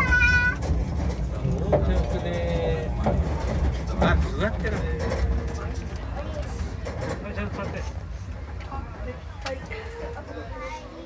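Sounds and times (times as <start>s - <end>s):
child calling out: 0.0s - 0.6s
steam train rumble: 0.0s - 11.0s.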